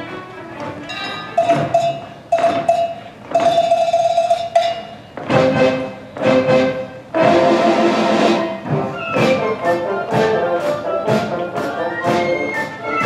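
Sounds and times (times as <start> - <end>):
percussion hits: 0.8 - 13.0
orchestra playing dance music: 1.4 - 13.0.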